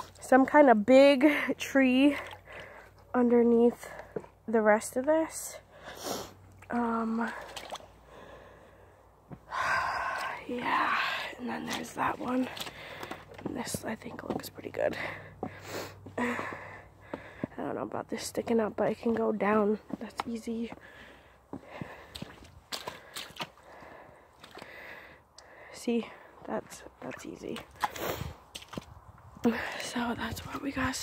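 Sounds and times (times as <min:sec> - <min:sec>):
footsteps on muddy ground: 0:00.0 - 0:05.1, 0:09.2 - 0:25.1, 0:26.2 - 0:31.0.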